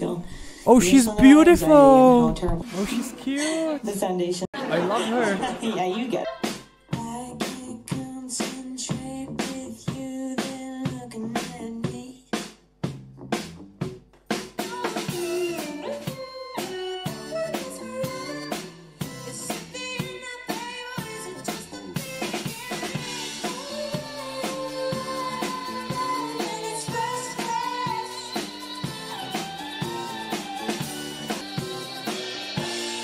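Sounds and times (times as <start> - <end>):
woman singing: 0.0 - 2.6, 5.6 - 12.3, 14.7 - 29.5
bass line: 0.7 - 2.7
drum kit beat: 0.7 - 2.7, 6.4 - 16.2, 22.0 - 28.6.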